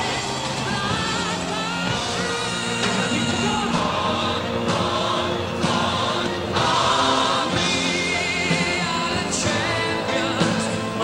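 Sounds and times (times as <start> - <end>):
chorus singing over band: 0.0 - 11.0.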